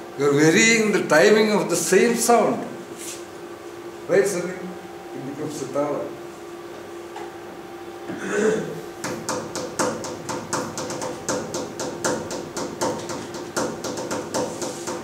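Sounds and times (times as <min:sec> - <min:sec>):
rhythmic tapping on hard surface: 0:09.0 - 0:15.0.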